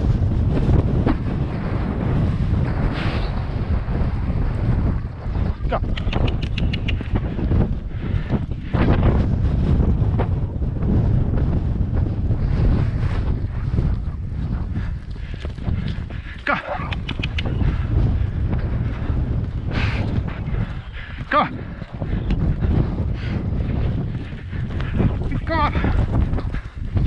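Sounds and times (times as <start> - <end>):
wind buffeting microphone: 0.0 - 27.0
quick clicks: 5.8 - 7.2, 16.6 - 17.6.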